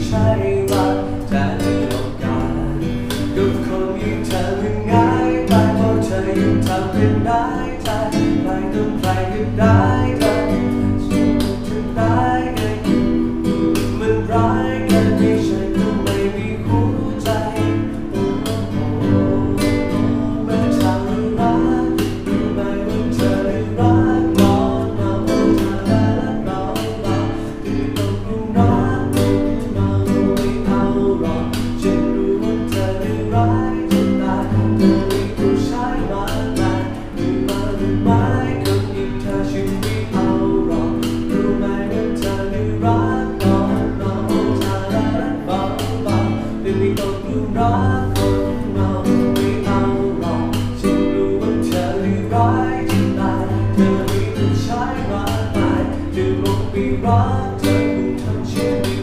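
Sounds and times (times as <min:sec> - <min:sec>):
classical guitar fingerstyle: 0:00.0 - 0:59.0.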